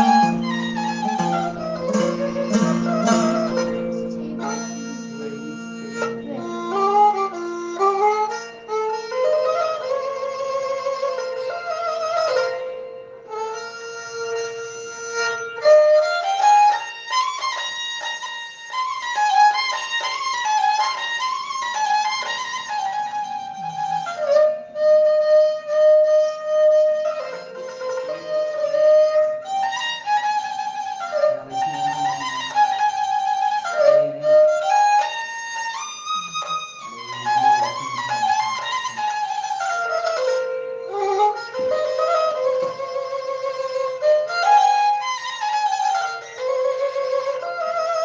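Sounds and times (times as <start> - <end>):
bowed fiddle melody: 0.0 - 48.0.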